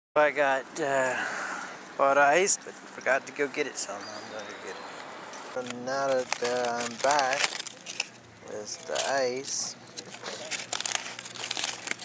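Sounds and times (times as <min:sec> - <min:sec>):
aluminium foil crinkling: 0:05.6 - 0:12.0.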